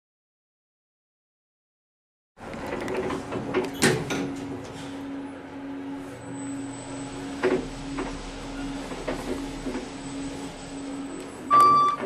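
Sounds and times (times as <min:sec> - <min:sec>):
low mechanical hum: 0:02.4 - 0:12.0
short electronic beep: 0:11.5 - 0:12.0.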